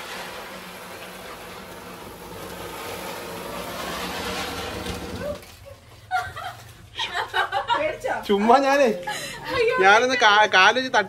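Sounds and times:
ground spinner firework hissing: 0:00.0 - 0:06.5.

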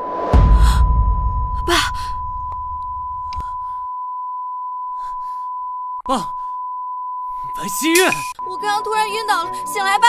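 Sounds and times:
low rumble: 0:00.0 - 0:03.7
monitor flatline beep: 0:06.6 - 0:10.0.

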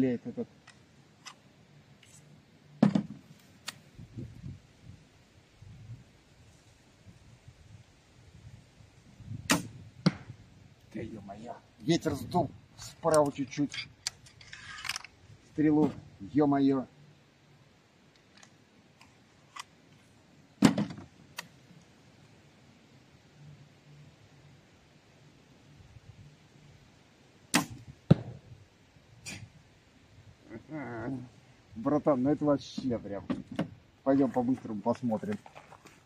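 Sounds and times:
crossbow string release crack: 0:03.4 - 0:03.8
bolt striking target: 0:09.5 - 0:10.3, 0:27.5 - 0:28.4.

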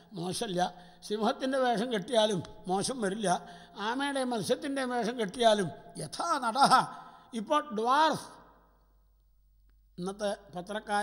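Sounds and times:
man speaking: 0:00.0 - 0:08.5, 0:10.0 - 0:11.0.

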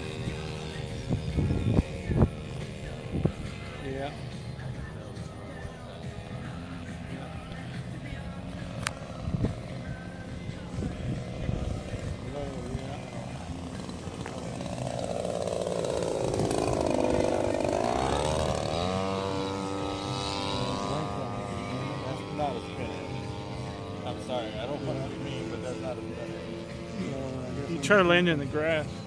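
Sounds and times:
model plane engine flying past: 0:00.0 - 0:29.0.

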